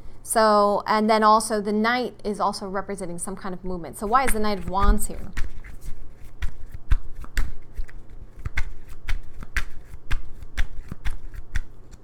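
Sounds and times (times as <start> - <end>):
cards being shuffled by hand: 4.0 - 12.0.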